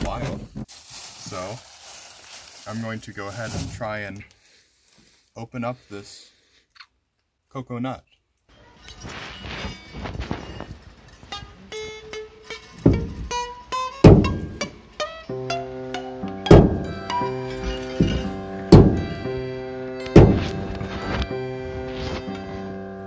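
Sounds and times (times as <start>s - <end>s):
keyboard music with held notes: 8.6s - 23.0s.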